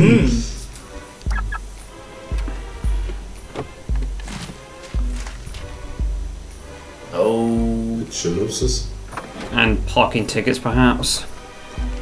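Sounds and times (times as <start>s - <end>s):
quiet cartoon music: 0.0s - 12.0s
short high chirps: 1.3s - 1.6s.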